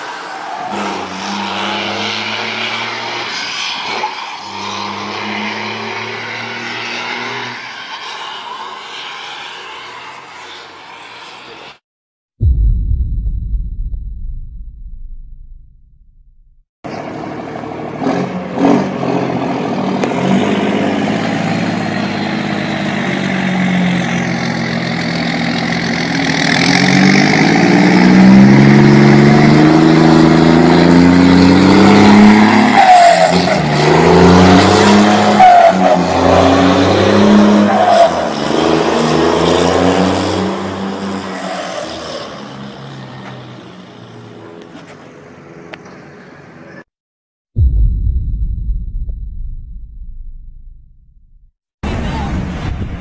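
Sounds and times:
diesel truck accelerating: 0:00.0 - 0:11.8, 0:15.8 - 0:44.4.

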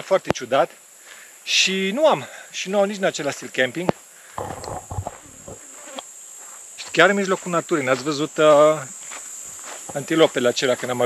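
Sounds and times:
insects droning: 0:00.0 - 0:11.0
scuffing noise: 0:04.4 - 0:11.0.

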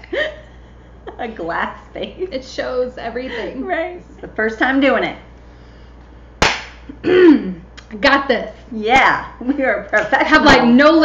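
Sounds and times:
sharp hand clap: 0:06.4 - 0:06.8.

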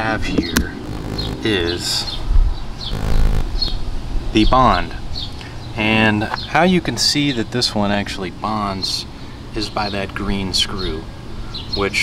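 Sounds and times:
low microphone rumble: 0:00.8 - 0:01.5, 0:02.4 - 0:04.0.

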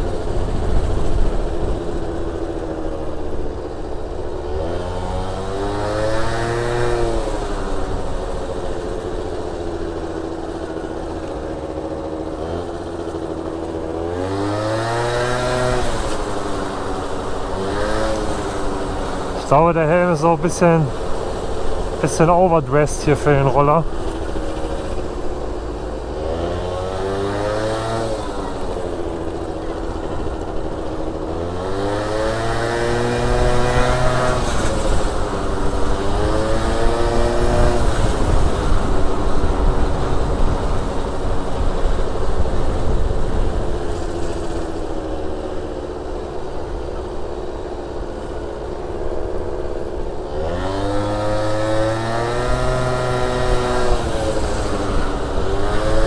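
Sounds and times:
scooter engine revving: 0:00.0 - 0:56.0.

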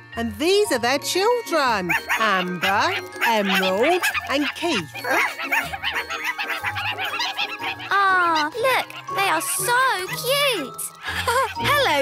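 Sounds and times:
light background music: 0:00.0 - 0:12.0
cartoon puppy-like yaps: 0:01.9 - 0:12.0.

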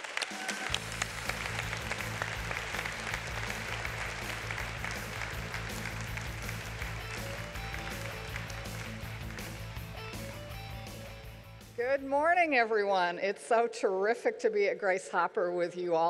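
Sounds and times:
audience applause: 0:00.0 - 0:10.5
walk-on music with bass line: 0:00.7 - 0:11.8.

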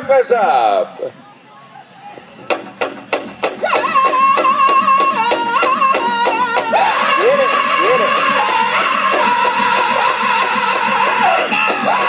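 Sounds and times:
big drum steady beat: 0:02.4 - 0:12.0
high-pitched male singing: 0:03.6 - 0:12.0.

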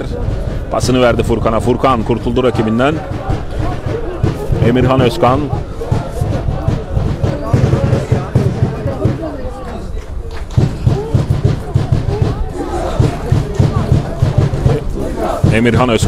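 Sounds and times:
low thuds: 0:00.0 - 0:09.4, 0:10.5 - 0:16.0
supporters chanting and shouting: 0:00.0 - 0:16.0.

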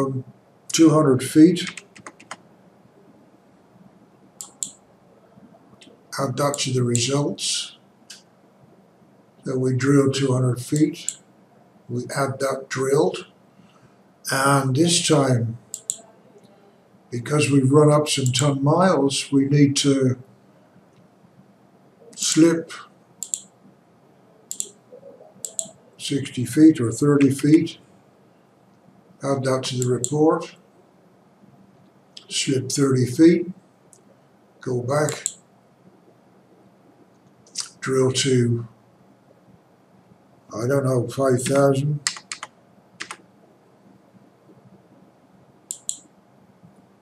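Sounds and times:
computer mouse clicks: 0:01.6 - 0:02.4, 0:04.4 - 0:04.8, 0:15.7 - 0:16.5, 0:23.2 - 0:23.5, 0:24.5 - 0:24.8, 0:25.4 - 0:25.8, 0:35.0 - 0:35.4, 0:41.4 - 0:43.2, 0:45.7 - 0:46.1
computer keyboard key taps: 0:01.7 - 0:02.4.

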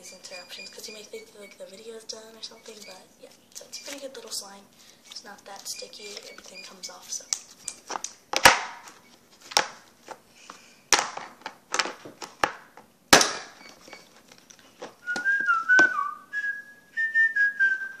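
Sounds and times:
person whistling a tune: 0:15.0 - 0:18.0.

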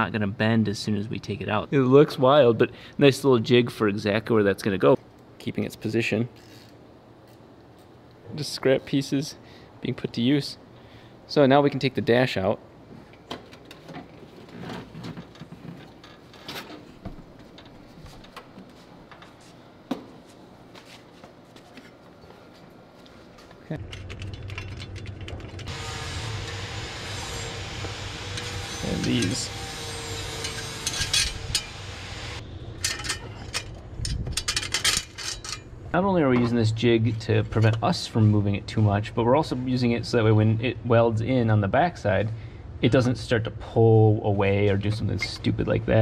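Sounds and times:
steady hum: 0:17.0 - 0:46.0
metal tools clinking and rattling: 0:23.8 - 0:25.7, 0:30.2 - 0:31.8, 0:32.8 - 0:35.7.

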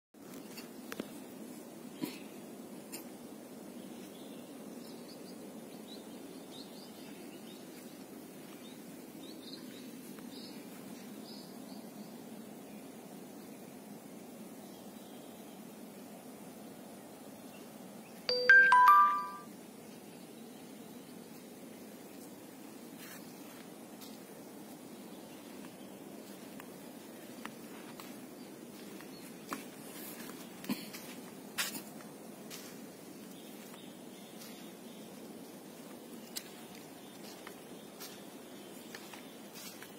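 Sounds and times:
outdoor background hiss: 0:00.2 - 0:39.9
faint bird chirps: 0:18.2 - 0:19.5
chime stepping down in pitch: 0:18.3 - 0:19.4.

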